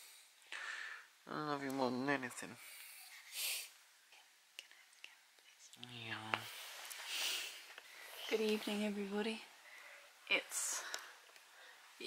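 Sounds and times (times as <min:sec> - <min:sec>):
soft whispering: 0:04.1 - 0:11.2
faint clicks: 0:10.8 - 0:11.5.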